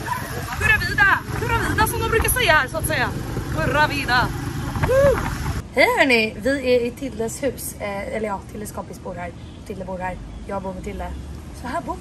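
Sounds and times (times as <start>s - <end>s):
wind buffeting microphone: 0.0s - 5.7s
small vehicle rumbling: 0.0s - 5.8s
voices talking: 0.0s - 12.0s.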